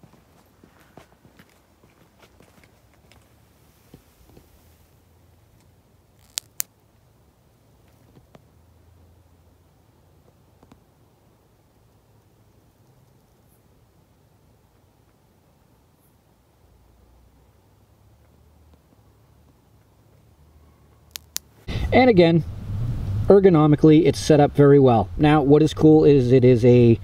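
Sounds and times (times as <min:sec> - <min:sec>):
faint handling ticks: 0:05.5 - 0:06.7
sharp clicks: 0:21.1 - 0:21.5.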